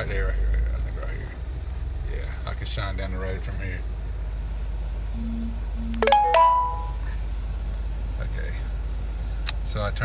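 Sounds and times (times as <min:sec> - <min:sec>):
car engine rumbling: 0:00.0 - 0:10.0
short electronic beeps: 0:05.2 - 0:07.1.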